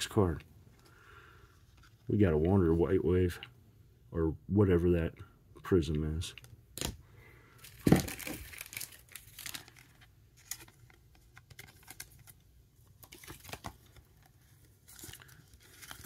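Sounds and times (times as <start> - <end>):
plastic sleeve crinkling: 7.6 - 16.0.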